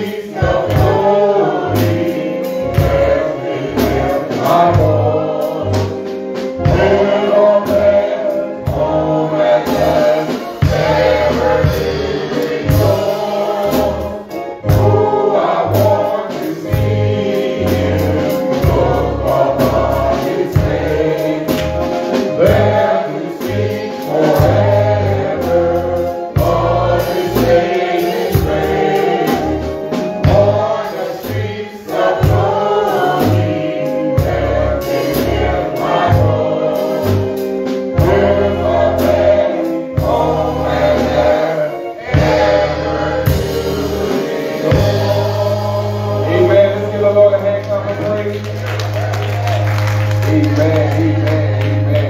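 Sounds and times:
gospel choir with instruments: 0.0 - 52.0
pulsing bass notes: 32.2 - 52.0.

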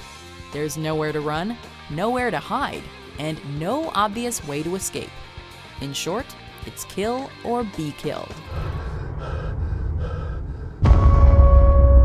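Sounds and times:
gasping breaths: 8.5 - 10.8
heavy impact boom: 8.5 - 12.0
low rumbling drone: 8.5 - 12.0.

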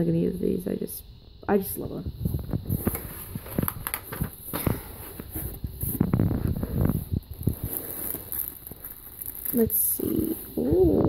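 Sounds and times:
plastic packaging crinkling: 2.7 - 10.6.

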